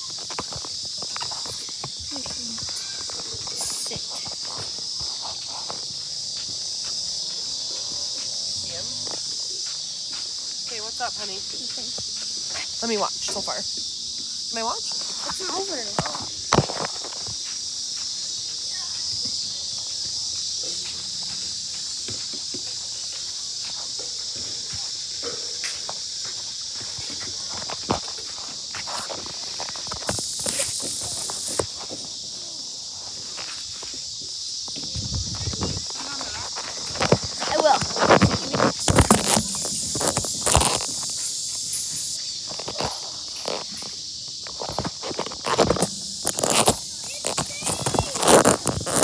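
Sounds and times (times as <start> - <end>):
insects chorus: 0.0 - 49.0
phone rubbing against clothing: 35.0 - 43.7, 44.5 - 49.0.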